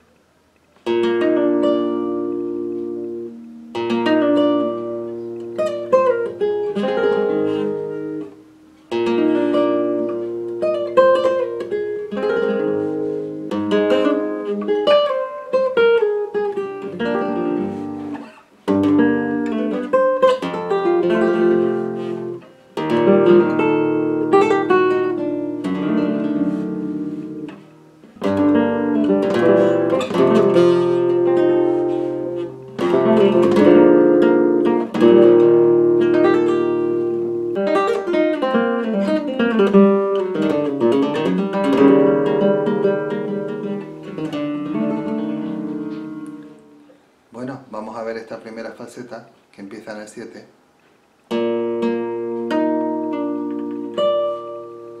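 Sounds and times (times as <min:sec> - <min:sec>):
solo flamenco guitar: 0:00.0 - 0:49.1, 0:50.8 - 0:55.0.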